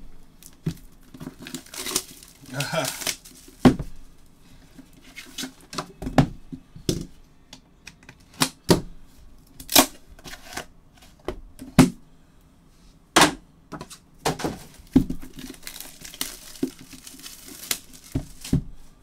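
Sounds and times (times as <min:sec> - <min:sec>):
cardboard tearing and crinkling: 0:00.4 - 0:03.7, 0:09.7 - 0:10.7, 0:14.5 - 0:18.6.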